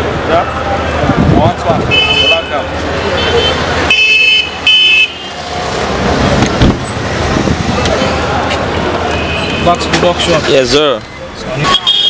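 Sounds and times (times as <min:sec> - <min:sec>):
street noise: 0:00.0 - 0:12.0
high-pitched vehicle horn toots: 0:11.7 - 0:12.0.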